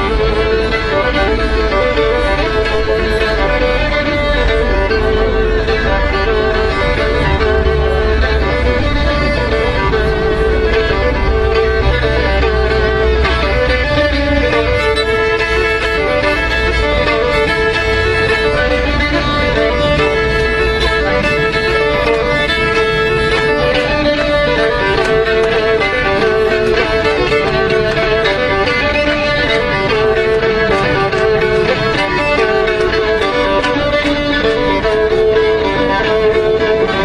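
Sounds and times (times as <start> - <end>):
fiddle playing fast folk melody: 0.0 - 37.0.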